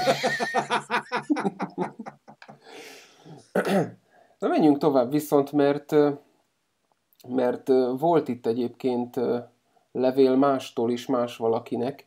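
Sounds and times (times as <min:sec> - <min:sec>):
man breathing softly: 0:02.6 - 0:04.4
man clearing throat: 0:03.4 - 0:04.0.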